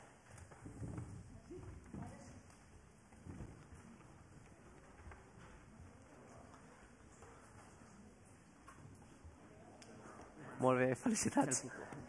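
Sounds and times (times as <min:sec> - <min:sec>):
soft knocks and rustles: 0:00.1 - 0:09.4.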